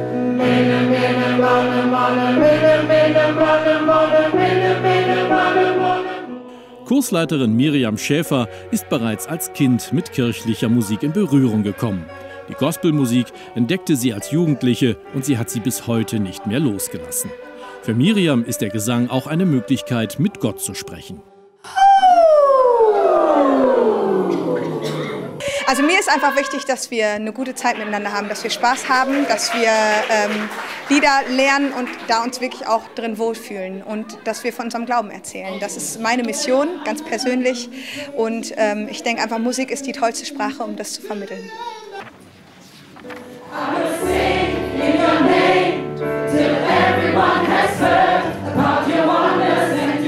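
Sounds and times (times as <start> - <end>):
choir singing held chords: 0.0 - 7.9, 22.4 - 26.0, 43.4 - 50.0
woman singing a descending glide: 21.7 - 26.4.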